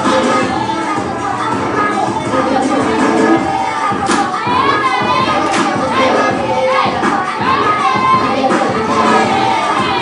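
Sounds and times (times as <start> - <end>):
children chattering and calling out: 0.0 - 10.0
dance music: 0.0 - 10.0.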